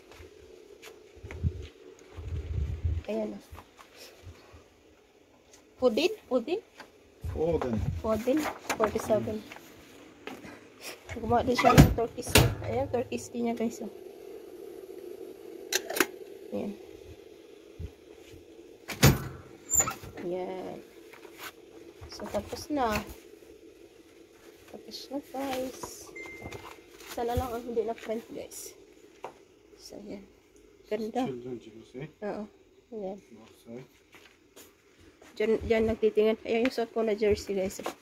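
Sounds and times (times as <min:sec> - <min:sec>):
faint steady hum: 0:00.0 - 0:38.0.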